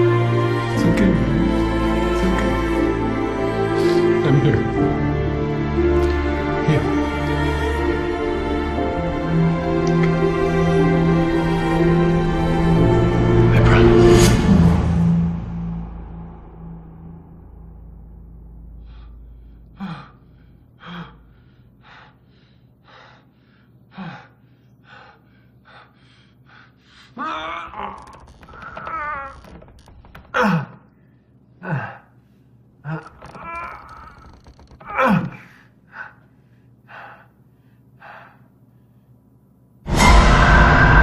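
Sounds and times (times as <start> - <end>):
low rumble: 11.8 - 21.4.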